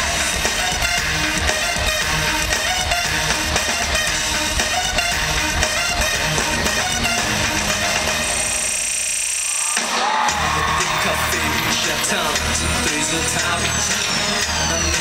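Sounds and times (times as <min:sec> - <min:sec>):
live dance music over a pa: 0:00.0 - 0:15.0.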